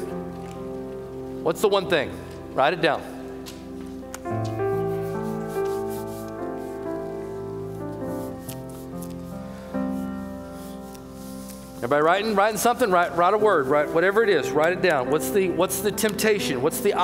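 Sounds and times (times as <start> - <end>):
keyboard playing soft chords: 0.0 - 17.0
pens scratching on paper: 3.5 - 7.0, 7.7 - 14.9.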